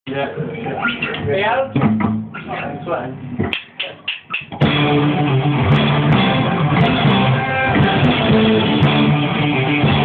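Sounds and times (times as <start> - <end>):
people talking: 0.1 - 1.8, 2.5 - 3.2
drumstick clicks: 3.4 - 4.6.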